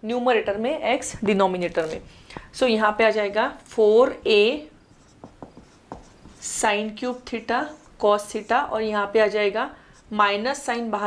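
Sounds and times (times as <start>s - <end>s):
marker writing on whiteboard: 4.3s - 10.2s.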